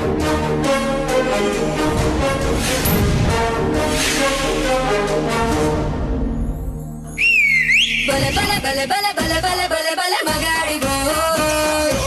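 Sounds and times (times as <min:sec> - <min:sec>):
loud gliding whistle: 0:07.1 - 0:08.2.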